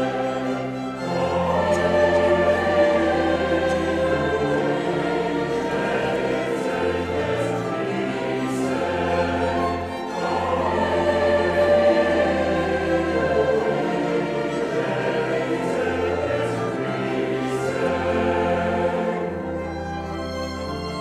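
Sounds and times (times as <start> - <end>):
choir singing sacred music: 0.0 - 21.0
instrumental accompaniment: 0.0 - 21.0.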